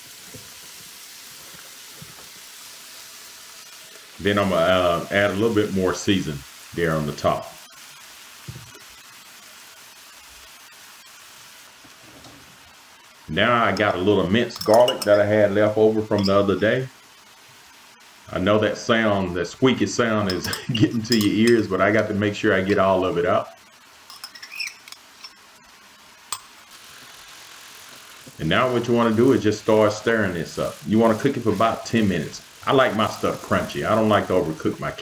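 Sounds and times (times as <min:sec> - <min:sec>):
cabbage sizzling in a pan: 0:00.0 - 0:35.0
faint steady hiss: 0:00.0 - 0:35.0
metal fork clinking on glass jar: 0:14.6 - 0:15.1.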